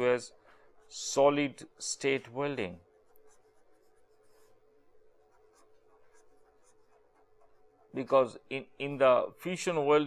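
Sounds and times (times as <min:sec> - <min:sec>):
faint steady hum: 0:00.0 - 0:10.0
pen scratching on paper: 0:02.8 - 0:08.1.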